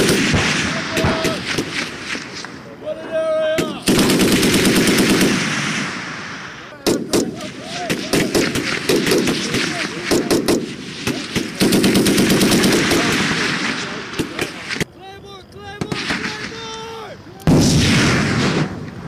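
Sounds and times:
automatic gunfire bursts: 0.0s - 1.8s, 3.8s - 5.8s, 6.9s - 14.5s
single gunshots: 0.0s - 2.7s, 3.6s - 14.9s, 17.4s - 19.0s.

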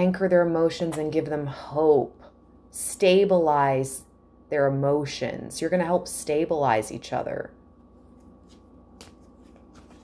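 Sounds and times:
cards rustling: 8.3s - 10.0s.

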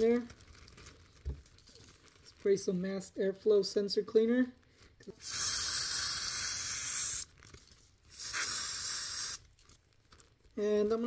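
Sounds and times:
aerosol can spraying: 5.2s - 7.3s, 8.1s - 9.4s.

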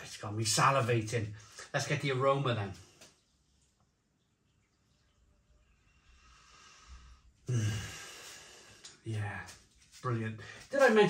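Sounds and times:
man sniffing: 7.5s - 8.7s.

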